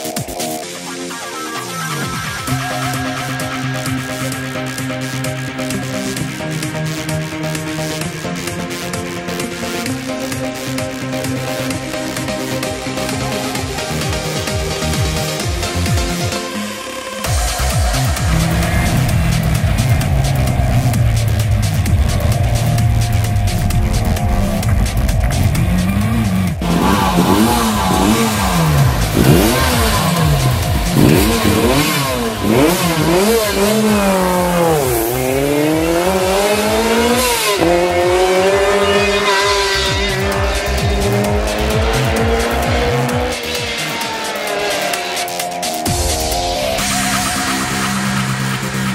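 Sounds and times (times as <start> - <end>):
music: 0.0 - 48.9
rally car engine revving: 0.0 - 48.9.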